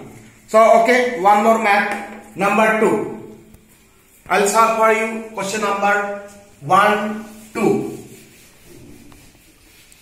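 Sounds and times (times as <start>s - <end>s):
duster rubbing whiteboard: 4.1s - 10.0s.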